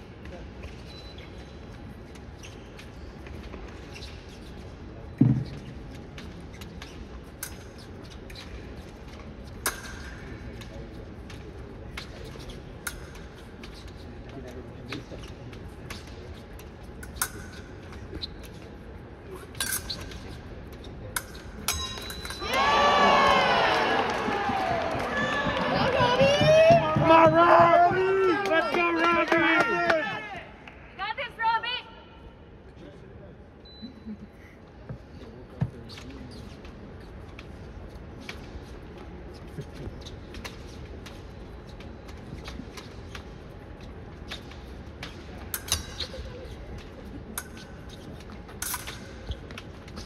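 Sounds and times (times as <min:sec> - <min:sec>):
clicks of fencing blades: 0:05.9 - 0:18.8, 0:19.4 - 0:20.4, 0:21.1 - 0:22.5, 0:39.7 - 0:50.0
people shouting and cheering: 0:22.4 - 0:30.5.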